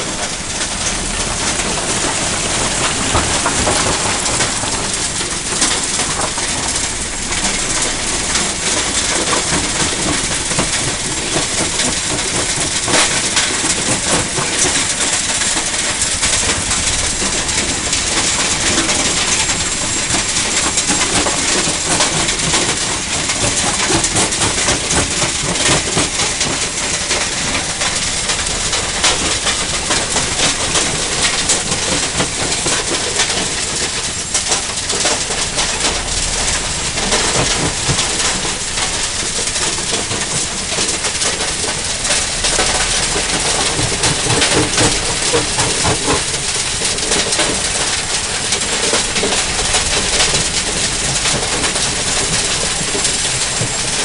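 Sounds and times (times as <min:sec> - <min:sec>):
rock crusher machine din: 0:00.0 - 0:54.0.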